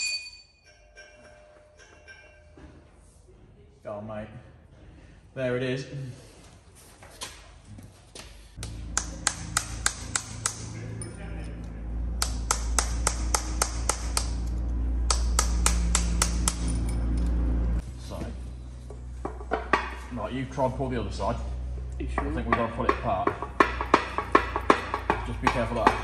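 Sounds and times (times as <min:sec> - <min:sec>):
hammer striking metal punch: 0:08.9 - 0:11.1, 0:12.2 - 0:17.0, 0:22.2 - 0:26.0.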